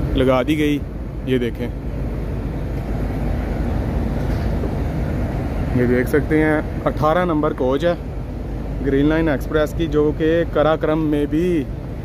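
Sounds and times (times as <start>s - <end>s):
train machinery rumble: 0.0s - 12.0s.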